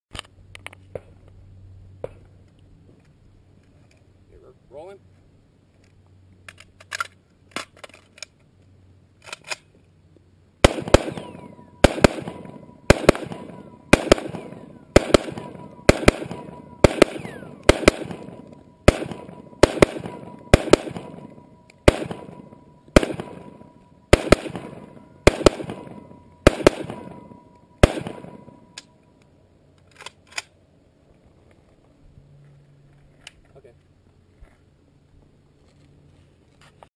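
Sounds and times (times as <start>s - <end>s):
rifle shots with echo: 10.6s - 28.8s.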